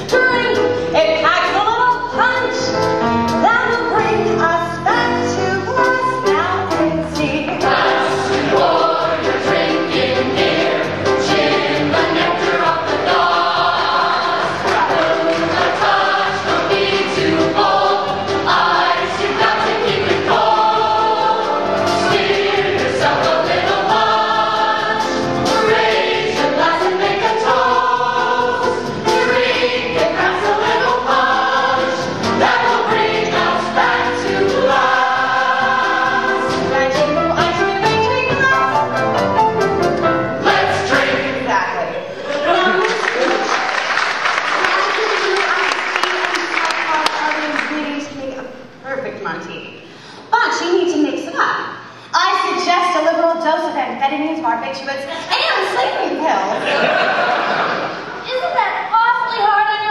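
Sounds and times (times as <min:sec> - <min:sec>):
piano: 0:00.0 - 0:48.9
drum kit: 0:05.7 - 0:41.4
choir singing in harmony: 0:07.3 - 0:44.2, 0:56.5 - 0:58.2.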